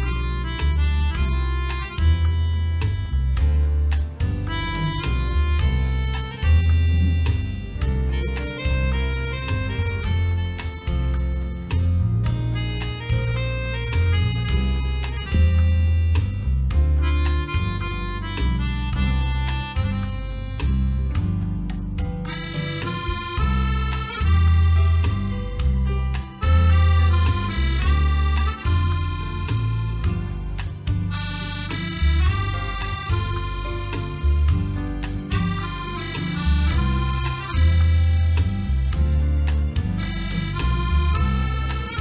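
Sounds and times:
accordion playing a melody: 0:00.0 - 0:42.0
bass guitar: 0:00.0 - 0:42.0
percussion strokes: 0:00.0 - 0:42.0.

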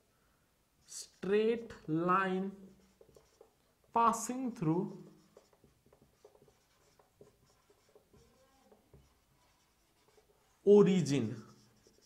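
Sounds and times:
marker pen writing on whiteboard: 0:00.8 - 0:12.0.

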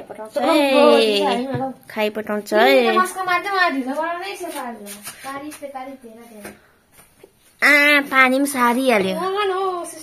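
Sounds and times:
woman speaking: 0:00.0 - 0:05.1, 0:07.8 - 0:10.0.

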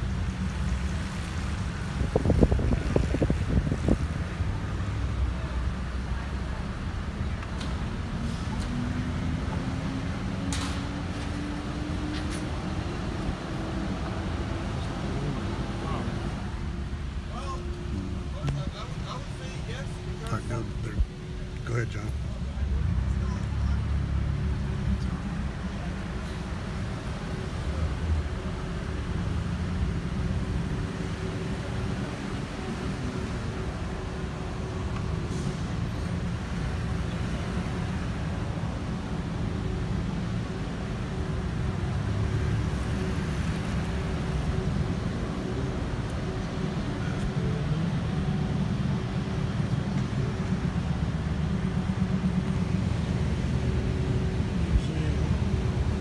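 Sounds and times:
car engine and road rumble: 0:00.0 - 0:56.0.

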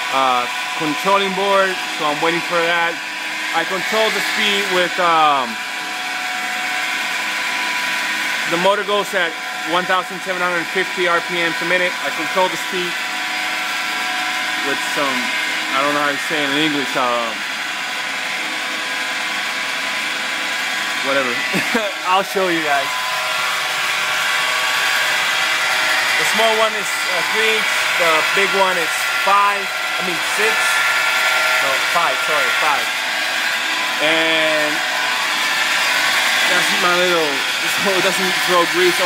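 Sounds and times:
electric motor hum: 0:00.0 - 0:39.0.

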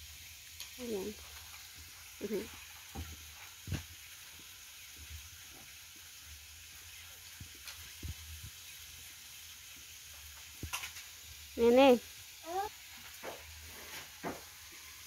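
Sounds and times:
food sizzling in a pan: 0:00.0 - 0:15.0.

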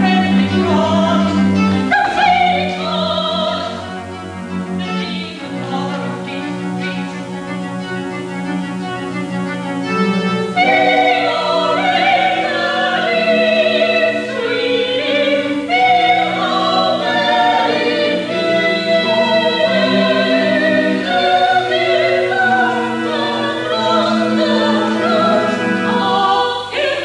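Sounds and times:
women singing together: 0:00.0 - 0:03.8, 0:04.8 - 0:07.1, 0:10.6 - 0:27.0.

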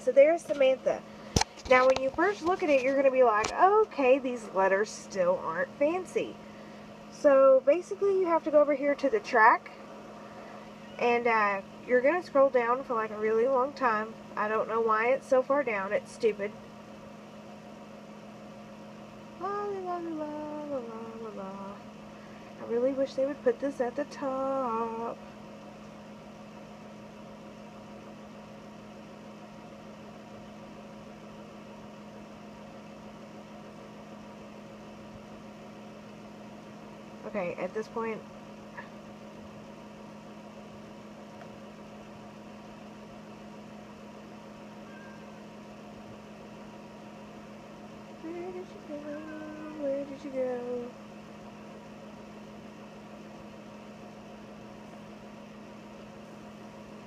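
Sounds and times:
machine hum: 0:00.0 - 0:57.0.

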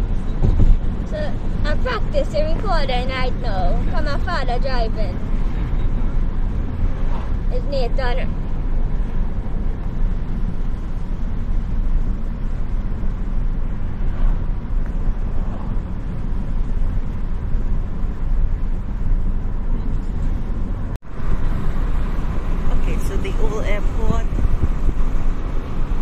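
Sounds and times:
car driving rumble from inside: 0:00.0 - 0:26.0.

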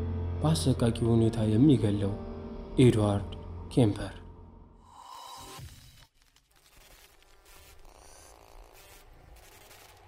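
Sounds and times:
scratchy crackle and static hiss: 0:05.1 - 0:10.0.

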